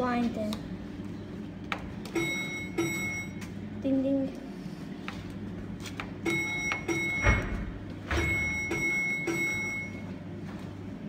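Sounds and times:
electronic signal bell ringing: 0:02.2 - 0:03.4, 0:06.2 - 0:07.4, 0:08.2 - 0:10.1.

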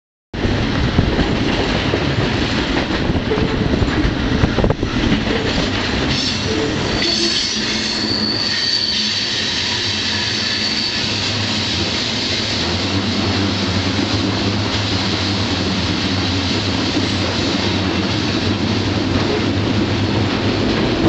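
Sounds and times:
train wheels rumbling on rail: 0:00.4 - 0:21.0
high-pitched wheel squeal: 0:06.1 - 0:11.9.

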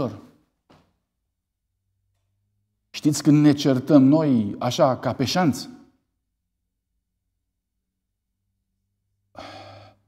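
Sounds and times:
man breathing in: 0:09.3 - 0:10.0.

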